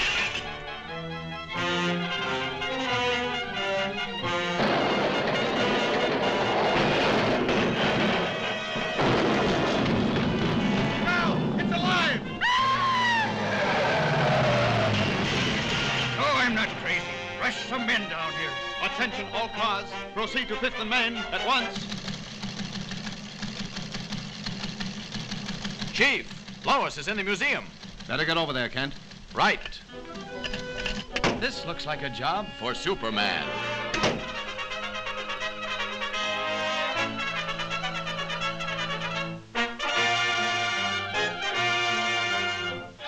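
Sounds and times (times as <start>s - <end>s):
dramatic orchestral music: 0.0s - 21.8s, 29.8s - 43.0s
loud crashing and rumbling: 4.4s - 12.4s, 13.1s - 16.9s
ticker machine clattering: 21.6s - 31.4s.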